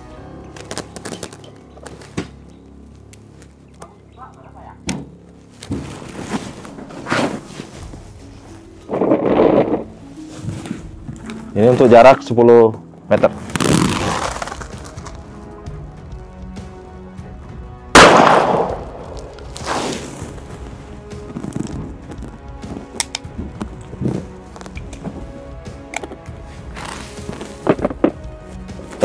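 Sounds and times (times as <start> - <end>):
quiet background music: 0.0 - 29.0.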